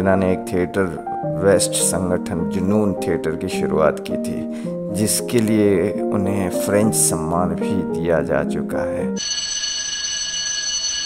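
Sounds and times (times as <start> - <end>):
high-pitched electronic ringing tone: 9.2 - 11.0.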